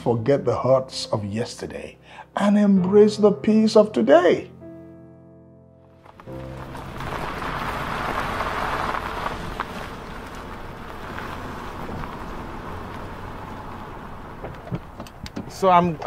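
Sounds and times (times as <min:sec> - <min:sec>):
tyre and engine noise: 0:06.0 - 0:16.0.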